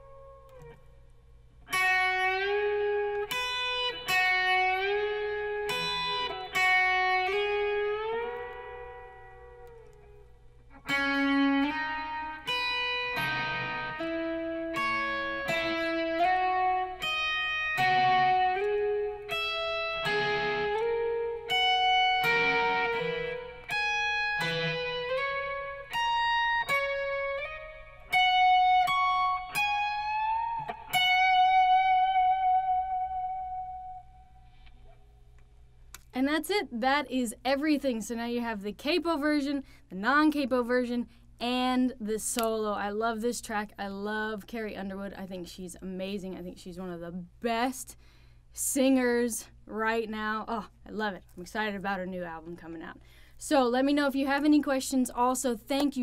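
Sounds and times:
electric guitar country solo: 0.0s - 1.1s, 1.7s - 35.0s.

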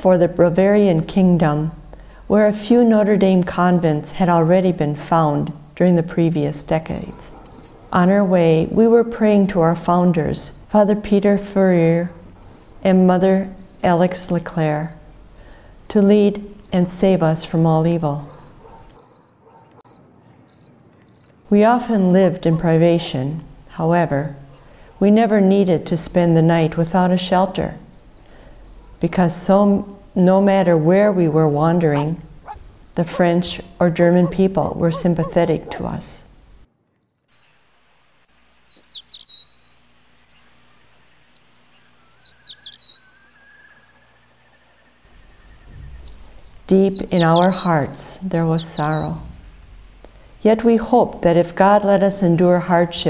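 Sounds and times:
songbird chirping: 0.0s - 50.2s
cricket chirping: 2.4s - 4.5s, 7.0s - 8.8s, 11.2s - 12.8s, 13.6s - 13.8s, 14.8s - 15.6s, 18.3s - 19.3s, 19.9s - 21.3s, 24.6s - 25.4s, 27.9s - 28.9s, 31.6s - 33.0s, 36.4s - 39.4s
faint steady hiss: 48.8s - 51.2s.

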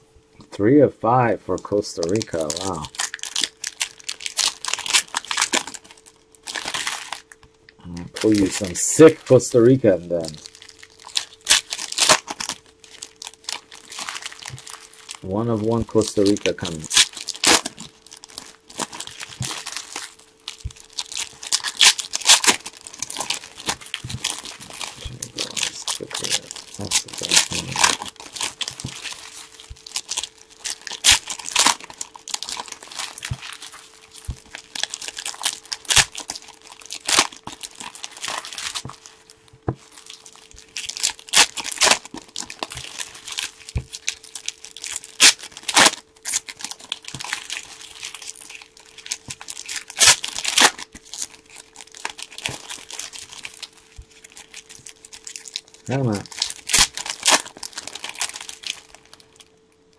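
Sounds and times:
foil wrappers tearing and crinkling: 1.5s - 7.4s, 8.1s - 59.9s.

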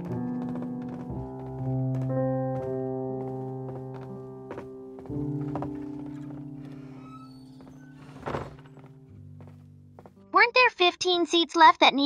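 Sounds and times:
low string music: 0.0s - 10.5s
wooden doors shutting: 3.9s - 9.0s.

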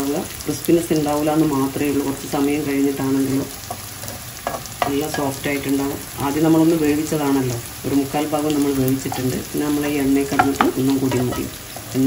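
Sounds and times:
potatoes sizzling in oil: 0.0s - 12.0s
metal spatula turning food: 3.2s - 5.8s, 8.4s - 12.0s
person speaking: 4.8s - 12.0s.

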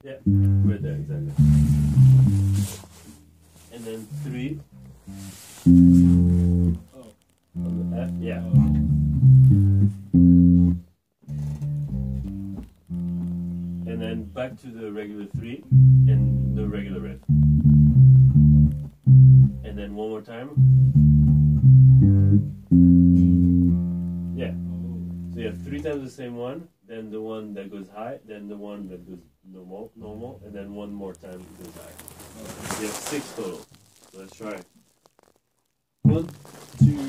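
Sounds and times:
electric bass guitar notes: 0.0s - 3.4s, 4.0s - 6.9s, 7.5s - 14.6s, 15.2s - 26.0s, 36.1s - 37.0s.

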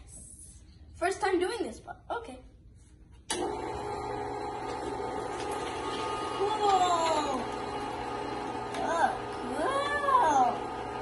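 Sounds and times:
meat grinder motor humming: 3.4s - 11.0s.

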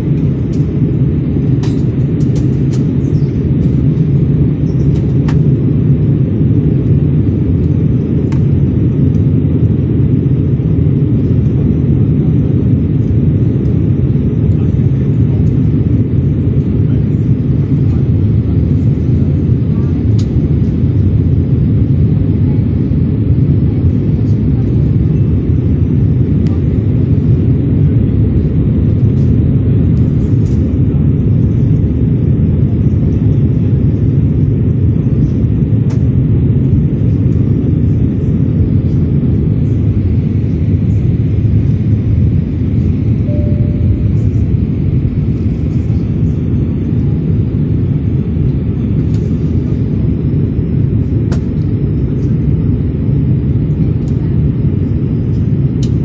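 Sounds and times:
airliner cabin engine rumble: 0.0s - 56.0s.

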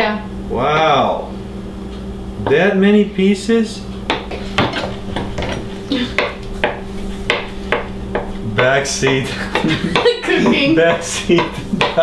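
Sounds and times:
knife chopping on cutting board: 4.1s - 10.2s, 10.9s - 12.0s.

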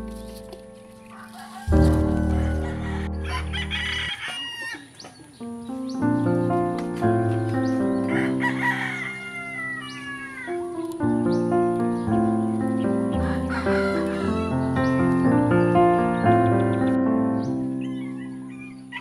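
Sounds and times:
music with sustained chords: 0.0s - 4.3s, 5.4s - 18.9s
rooster crowing: 1.0s - 5.1s, 7.3s - 10.7s, 13.1s - 14.8s, 17.8s - 19.0s.

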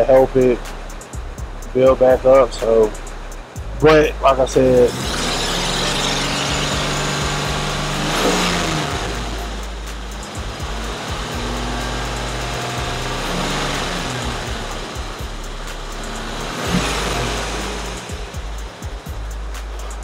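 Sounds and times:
car engine running at low revs: 0.0s - 20.0s.

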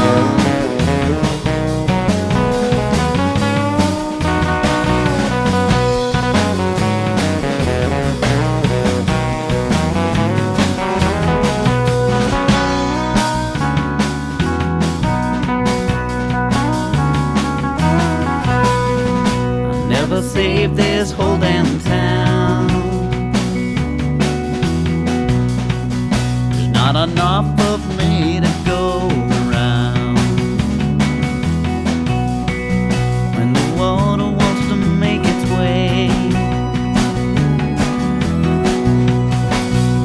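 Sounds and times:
rock band instrumental: 0.0s - 40.0s.

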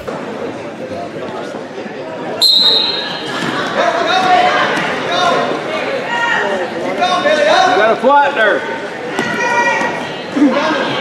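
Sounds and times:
referee's whistle blast: 2.4s - 3.3s.

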